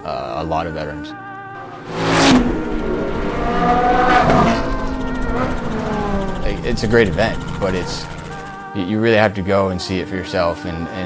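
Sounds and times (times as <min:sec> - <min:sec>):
sports cars passing at speed: 0:01.6 - 0:08.6.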